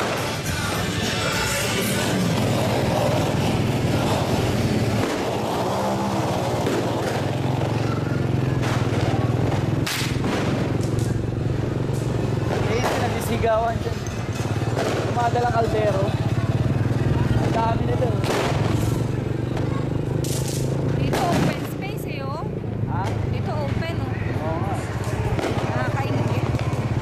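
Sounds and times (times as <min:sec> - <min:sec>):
low engine hum: 0:00.0 - 0:27.0
people calling and talking: 0:00.0 - 0:27.0
sharp cracks: 0:02.0 - 0:15.7, 0:17.4 - 0:21.8.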